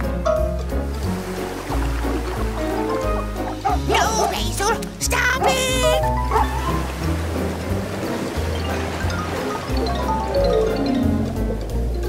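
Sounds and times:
upbeat background music: 0:00.0 - 0:12.0
cartoon dog barking and yelping: 0:03.7 - 0:06.8.

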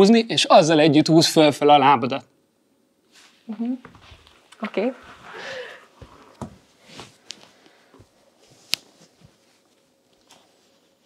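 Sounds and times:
soft rustling: 0:03.0 - 0:11.0
light taps and scuffs on floor: 0:06.0 - 0:10.4.

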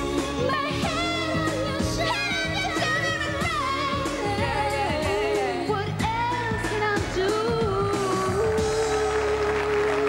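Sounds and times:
backing music: 0:00.0 - 0:10.0
woman singing into microphone: 0:00.0 - 0:10.0.

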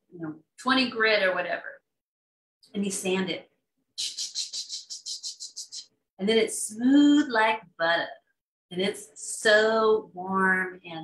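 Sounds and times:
person imitating sanding: 0:04.0 - 0:05.9.

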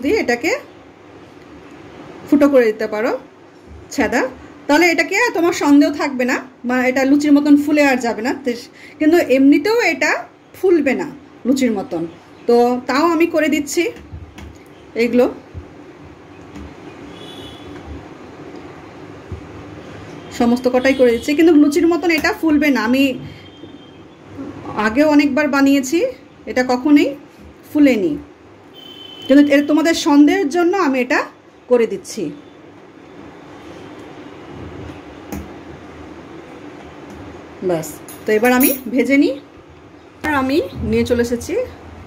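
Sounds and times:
mechanical hum and hiss: 0:00.0 - 0:42.0.

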